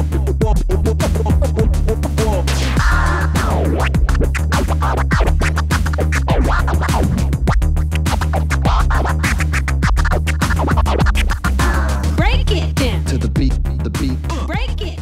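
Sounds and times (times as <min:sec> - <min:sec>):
hip hop music: 0:00.0 - 0:15.0
record scratching: 0:00.5 - 0:14.9.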